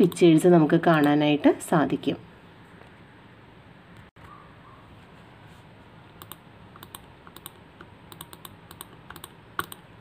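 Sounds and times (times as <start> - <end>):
computer mouse clicks: 6.2 - 9.8.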